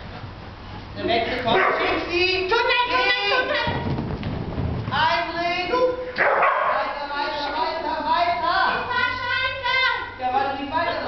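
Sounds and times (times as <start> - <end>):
dog barking and yipping: 6.2 - 6.8.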